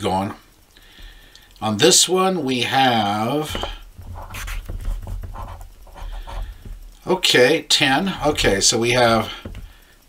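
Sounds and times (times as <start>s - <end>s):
coin scratching lottery ticket: 3.4s - 6.6s.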